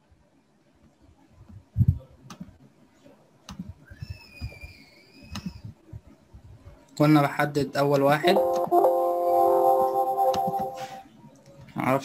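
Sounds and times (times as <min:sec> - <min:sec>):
faint high whistle-like tone: 0:03.8 - 0:05.6.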